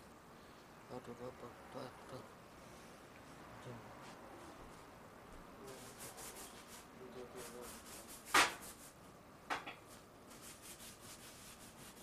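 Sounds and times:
faint tape hiss: 0:00.0 - 0:12.0
man speaking quietly: 0:00.9 - 0:02.3, 0:03.5 - 0:04.1, 0:05.5 - 0:06.0, 0:07.0 - 0:07.8.

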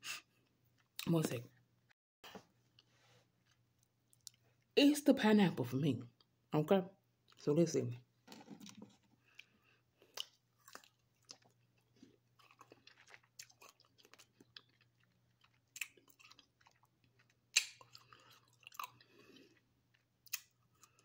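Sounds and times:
soft crunches of chewing: 0:02.3 - 0:04.7, 0:08.3 - 0:21.0
wet mouth clicks: 0:17.6 - 0:18.0.

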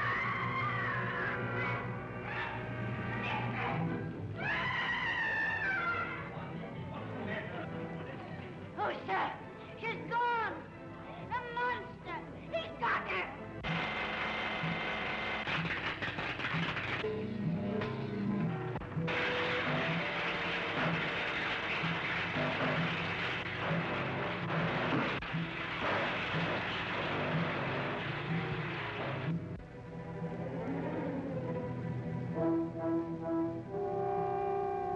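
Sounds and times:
electrical apparatus crackling and buzzing: 0:18.5 - 0:29.6.

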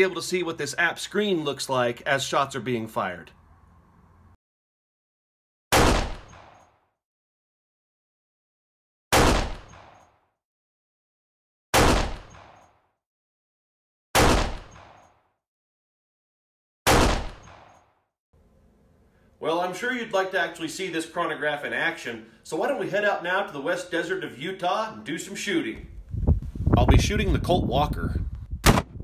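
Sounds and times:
gunshot: 0:05.7 - 0:06.7, 0:09.1 - 0:10.1, 0:11.7 - 0:12.8, 0:14.2 - 0:15.2, 0:16.9 - 0:17.9, 0:28.6 - 0:29.0.

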